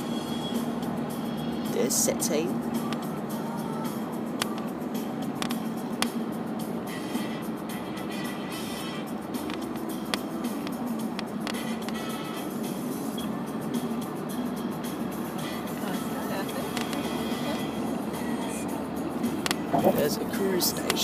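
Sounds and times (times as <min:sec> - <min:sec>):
music playing: 0:00.0 - 0:21.0
road and tyre noise: 0:00.0 - 0:21.0.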